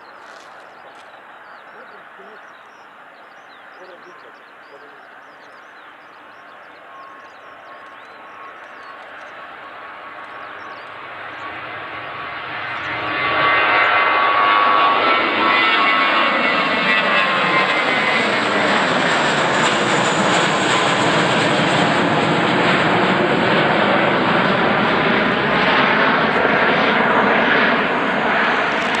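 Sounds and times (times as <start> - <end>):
jet engines at takeoff power: 0.0 - 29.0.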